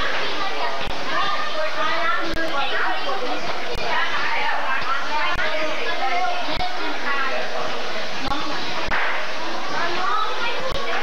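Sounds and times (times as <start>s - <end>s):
children's voices: 0.0s - 11.0s
crowd chatter: 0.0s - 11.0s.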